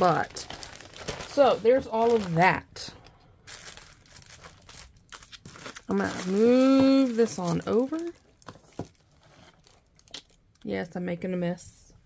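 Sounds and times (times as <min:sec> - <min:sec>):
plastic packaging crinkling: 0:00.0 - 0:10.6.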